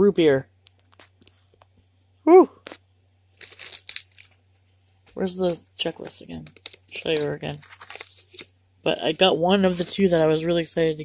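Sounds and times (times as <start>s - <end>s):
packaging crinkling: 2.7s - 4.5s, 5.1s - 8.6s.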